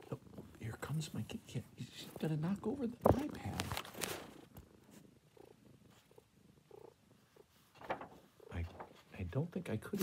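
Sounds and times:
cat purring: 0.0 - 10.0.

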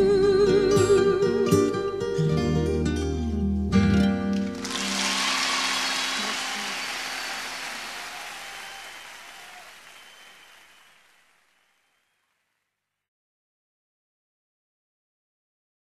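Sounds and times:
audience applause: 4.4 - 12.3.

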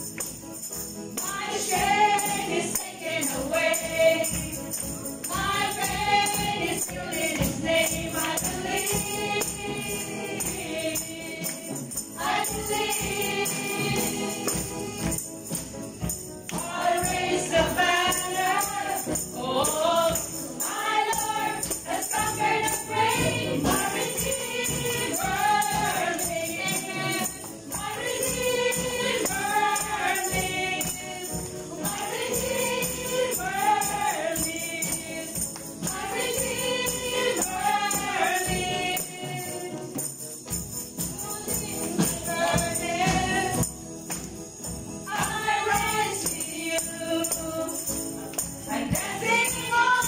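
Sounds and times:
backing music: 0.0 - 50.0
tambourines jingling: 0.0 - 50.0
woman singing worship song: 1.2 - 4.6, 5.2 - 15.2, 16.6 - 40.0, 41.2 - 43.7, 45.1 - 48.0, 48.6 - 50.0.

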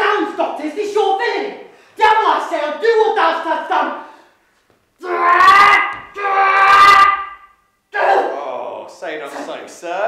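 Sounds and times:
person crying out: 5.0 - 8.4.

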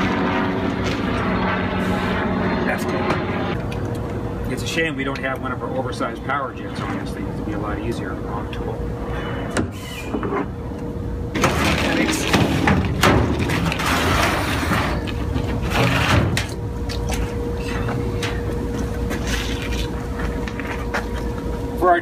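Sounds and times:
faint hum: 0.0 - 22.0.

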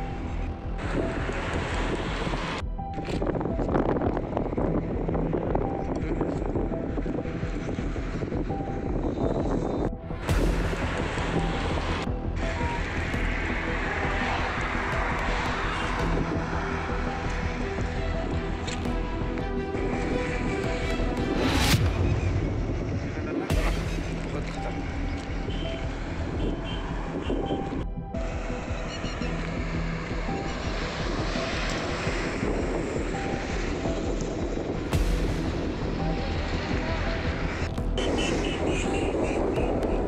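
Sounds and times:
highway traffic rumble: 0.0 - 40.0
wind buffeting microphone: 0.0 - 40.0.

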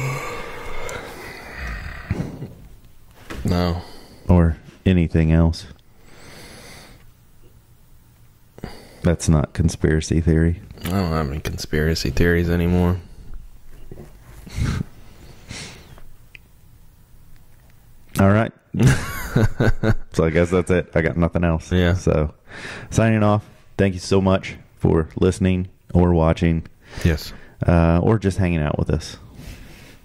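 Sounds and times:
person grunting: 0.0 - 2.6
faint room noise: 0.0 - 30.0.

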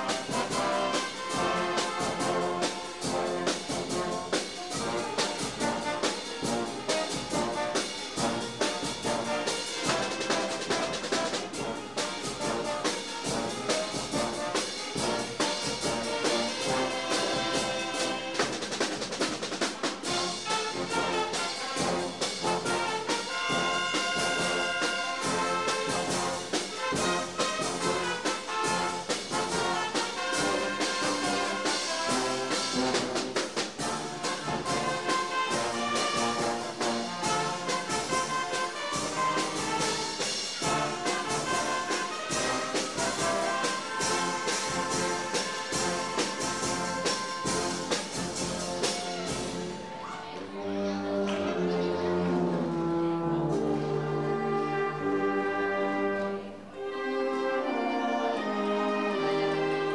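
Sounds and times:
concert wind band playing: 0.0 - 59.9.

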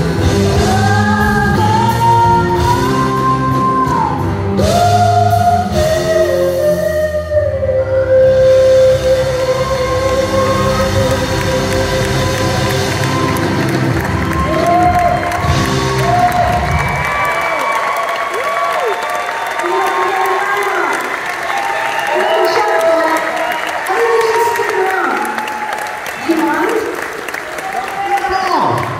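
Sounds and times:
woman singing with live band: 0.4 - 13.3
audience cheering and applauding: 8.9 - 28.9.

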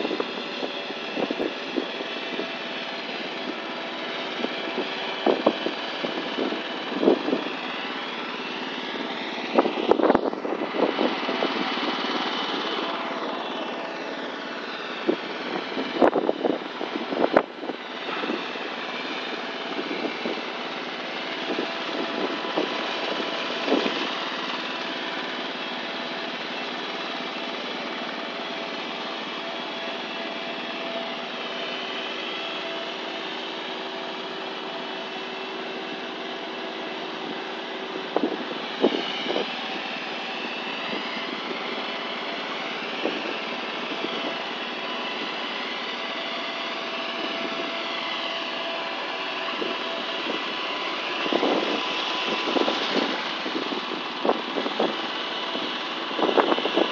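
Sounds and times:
mechanical motor drone: 0.0 - 56.9.

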